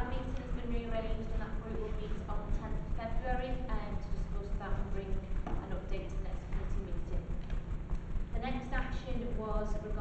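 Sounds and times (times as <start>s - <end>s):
steady low rumble: 0.0s - 10.0s
person talking: 8.3s - 10.0s.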